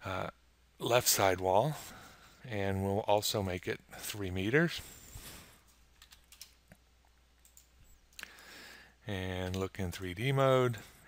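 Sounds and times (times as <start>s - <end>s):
computer keyboard keystrokes: 6.0s - 6.6s, 7.4s - 7.7s.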